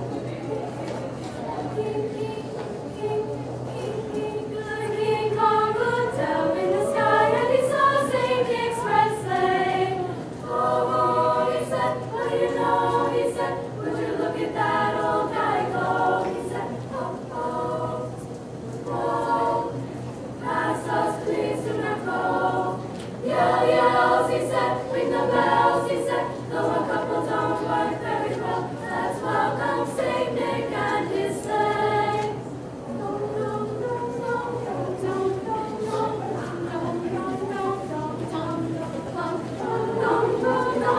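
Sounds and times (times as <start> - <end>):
female choir singing a cappella: 1.3 - 40.9.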